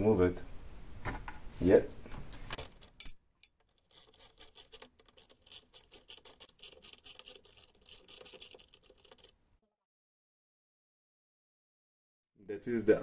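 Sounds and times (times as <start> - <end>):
ratchet wrench clicking: 3.4 - 9.3.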